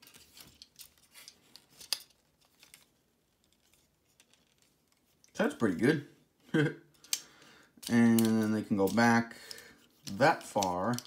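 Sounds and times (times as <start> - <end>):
plastic figure rattling: 0.0 - 5.4, 7.8 - 9.2, 9.9 - 11.0.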